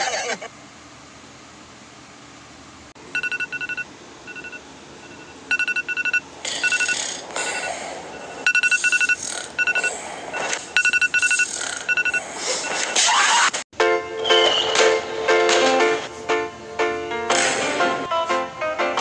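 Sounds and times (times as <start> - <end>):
short electronic beeps: 3.2 - 13.0.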